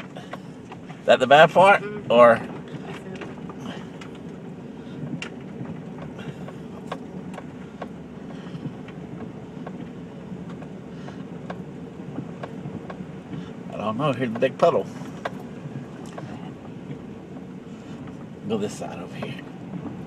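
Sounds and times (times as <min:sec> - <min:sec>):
vehicle engine and tyre drone: 0:00.0 - 0:20.0
sharp clicks and knocks: 0:05.0 - 0:13.4, 0:14.2 - 0:20.0.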